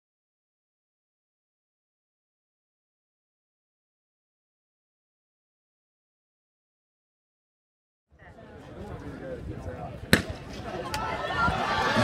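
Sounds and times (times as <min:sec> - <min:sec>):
starting pistol crack: 0:10.1 - 0:10.4
spectators cheering: 0:10.7 - 0:12.0.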